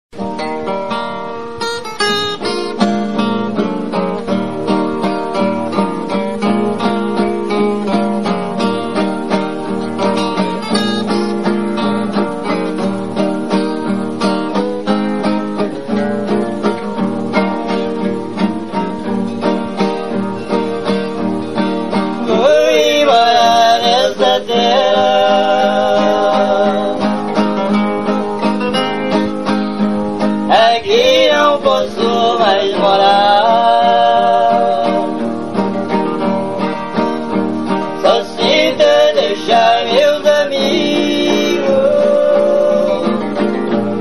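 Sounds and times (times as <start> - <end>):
acoustic guitar plucked: 0.1 - 44.0
man singing: 22.2 - 28.2, 30.5 - 35.6, 37.9 - 44.0.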